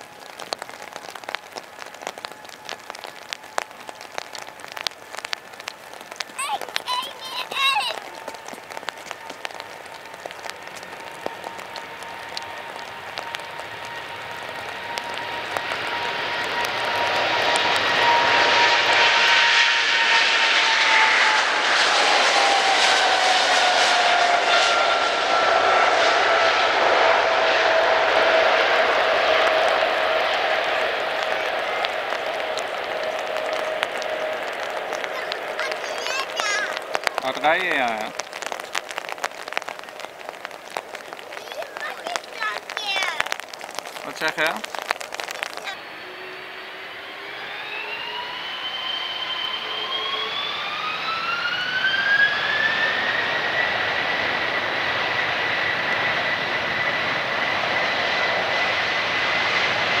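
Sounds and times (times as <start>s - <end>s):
jet engines roaring: 0.0s - 60.0s
jet engine whine sliding down: 6.4s - 60.0s
hiss of spray from runway: 10.6s - 43.0s.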